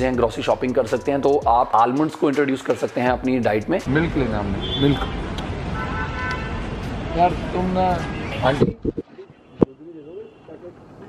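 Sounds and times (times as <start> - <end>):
traffic rumble: 3.1 - 11.0
faint vehicle horn: 4.6 - 5.2, 5.8 - 10.8.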